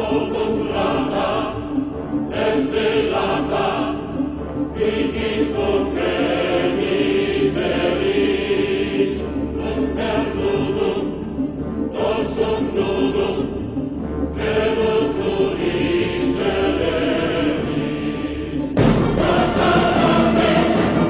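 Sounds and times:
choir singing sustained notes: 0.0s - 21.0s.

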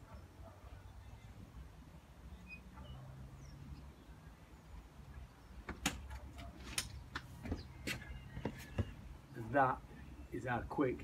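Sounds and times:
faint bird chirps: 2.2s - 5.7s
footsteps on paved path: 6.3s - 9.1s.

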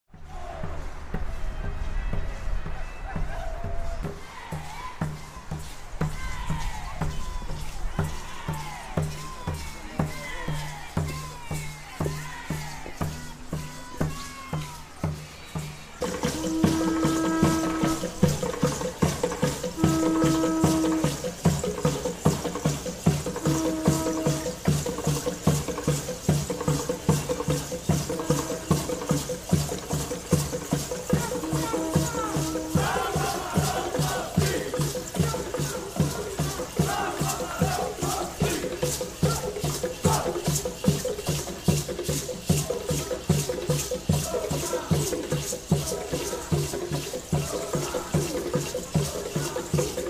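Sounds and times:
group of voices chanting: 0.1s - 21.2s, 31.0s - 41.0s, 42.6s - 50.0s
maracas shaking: 0.1s - 50.0s
steady drum beat: 0.1s - 50.0s.

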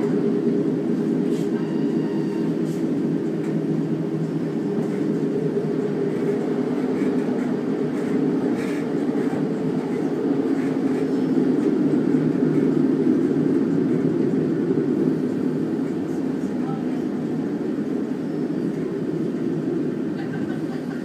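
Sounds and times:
train interior rumble: 0.0s - 21.0s.

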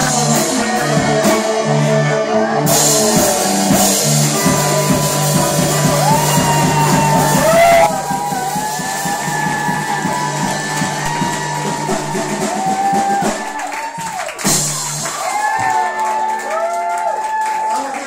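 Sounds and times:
person singing: 0.0s - 13.6s
live band playing: 0.0s - 17.1s.

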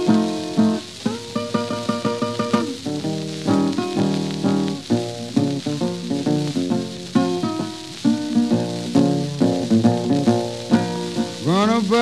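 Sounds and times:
fingerpicked acoustic blues guitar: 0.0s - 12.0s
record surface hiss and crackle: 0.0s - 12.0s.

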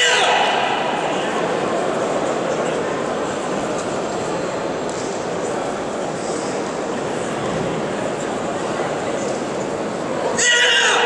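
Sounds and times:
loud high-pitched shout: 0.0s - 1.0s, 10.4s - 11.0s
murmur of arena crowd: 0.0s - 11.0s.

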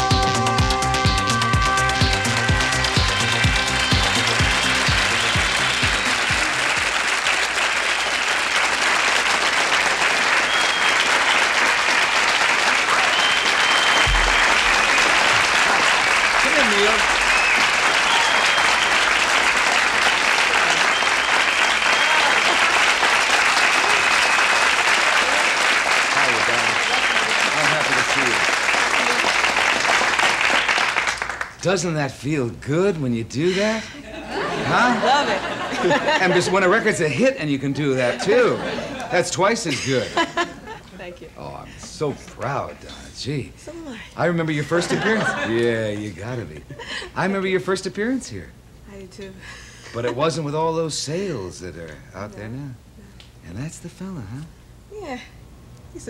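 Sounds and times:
electronic disco music: 0.0s - 6.9s, 14.0s - 18.8s
audience applauding: 1.3s - 31.6s.

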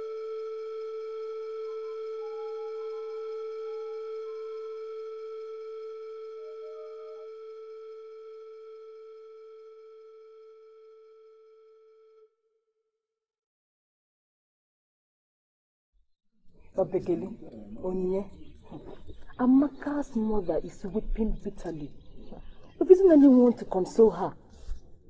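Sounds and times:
long held electronic note: 0.0s - 12.3s.

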